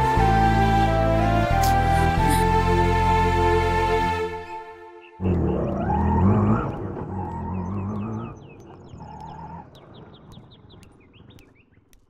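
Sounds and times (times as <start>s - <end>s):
small birds chirping: 4.5s - 12.0s
vehicle engine revving: 5.2s - 9.2s.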